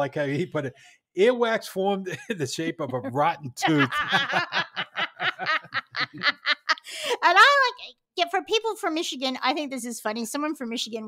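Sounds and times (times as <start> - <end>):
people laughing: 2.1 - 7.2.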